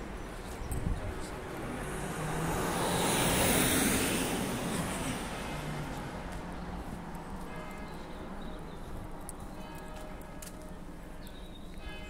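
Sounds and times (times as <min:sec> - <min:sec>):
vehicle passing by: 0:01.7 - 0:06.2.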